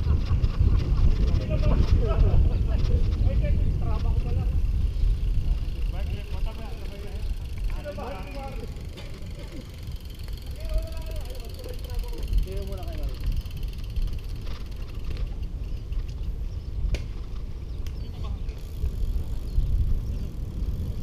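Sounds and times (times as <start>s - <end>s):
wind buffeting microphone: 0.0s - 21.0s
faint talk of riders: 0.7s - 14.8s.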